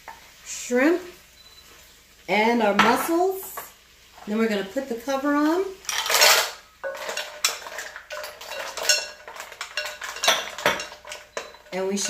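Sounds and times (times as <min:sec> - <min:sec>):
mussel shells clattering: 0:05.9 - 0:11.7.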